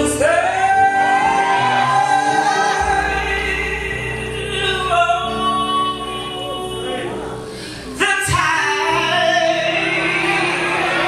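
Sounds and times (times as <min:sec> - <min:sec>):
woman singing gospel: 0:00.0 - 0:07.4
musical accompaniment: 0:00.0 - 0:11.0.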